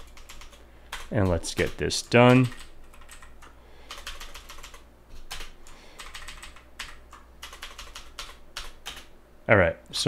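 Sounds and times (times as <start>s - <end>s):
computer keyboard clicking: 0.0s - 9.1s.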